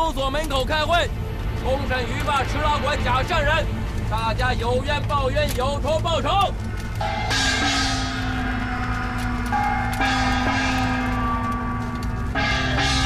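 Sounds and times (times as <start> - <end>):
hand gong ringing: 7.0 - 13.0.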